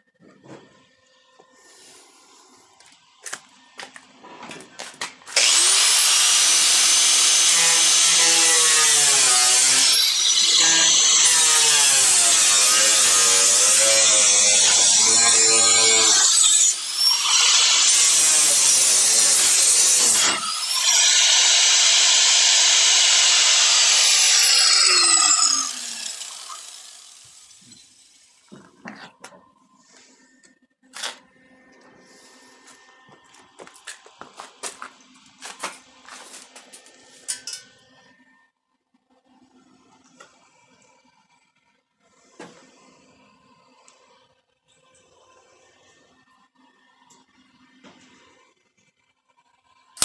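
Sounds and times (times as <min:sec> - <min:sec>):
power grinder on steel: 0:05.3 - 0:28.5.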